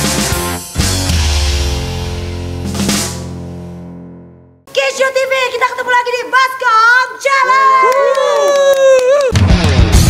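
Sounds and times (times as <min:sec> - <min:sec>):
rock jingle with drum kit: 0:00.0 - 0:04.1, 0:09.3 - 0:10.0.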